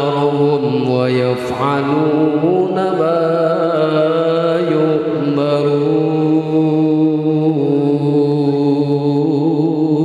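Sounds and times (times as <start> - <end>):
person reciting melodically into microphone: 0.0 - 10.0.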